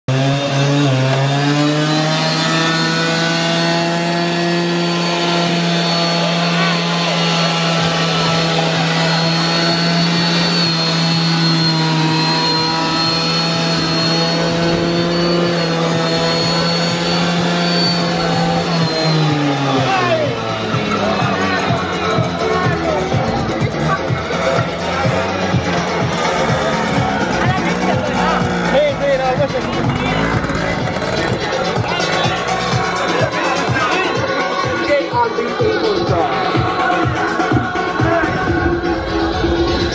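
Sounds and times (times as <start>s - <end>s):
scooter engine revving: 0.0s - 39.9s.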